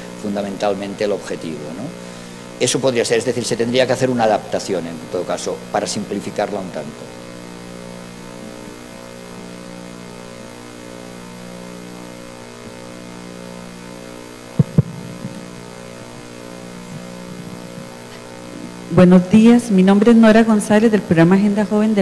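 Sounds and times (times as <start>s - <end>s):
electrical mains hum: 0.0s - 22.0s
double knock: 14.6s - 15.4s.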